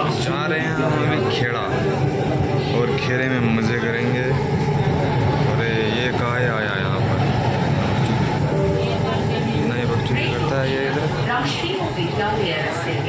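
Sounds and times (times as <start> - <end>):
people talking: 0.0 - 13.0
train rumbling: 0.0 - 13.0.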